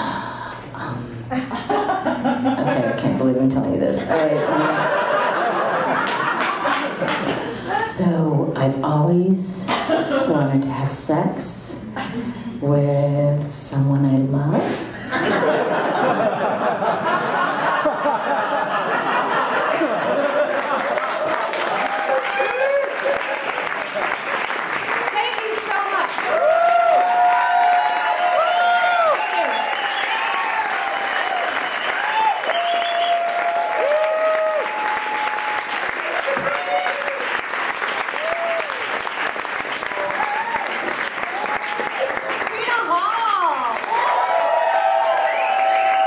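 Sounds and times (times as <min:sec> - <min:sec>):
audience applauding: 0:04.8 - 0:07.4, 0:16.2 - 0:46.0.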